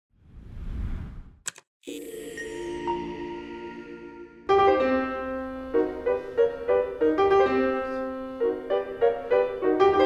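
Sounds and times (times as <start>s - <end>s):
sustained piano chord: 2.0s - 10.0s.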